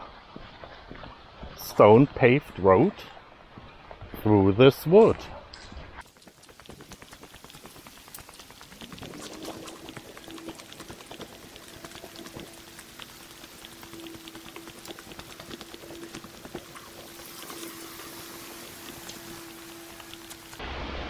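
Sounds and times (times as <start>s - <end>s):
dense crackling clicks: 6.0s - 20.6s
footsteps on gravel and leaves: 6.0s - 20.6s.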